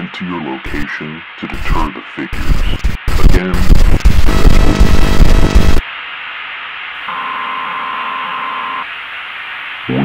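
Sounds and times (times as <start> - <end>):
static hiss: 0.0 - 10.0.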